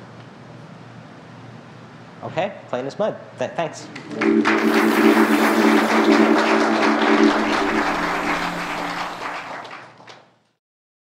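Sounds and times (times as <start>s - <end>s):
audience applause: 4.1s - 10.2s.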